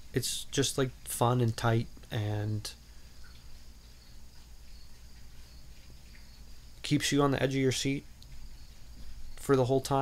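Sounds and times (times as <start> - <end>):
faint background hum and hiss: 0.0 - 10.0.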